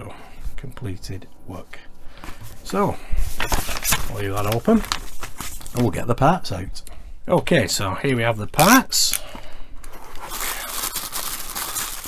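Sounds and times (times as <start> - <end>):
tissue paper rustling and crinkling: 2.2 - 5.9, 10.0 - 12.0.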